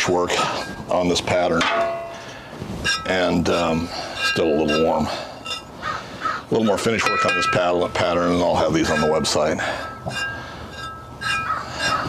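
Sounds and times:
crow cawing: 5.8 - 6.4.

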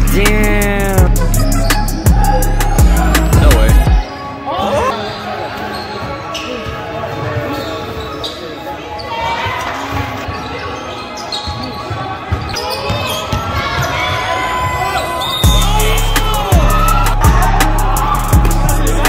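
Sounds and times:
people calling out: 0.1 - 6.6, 8.9 - 19.0.

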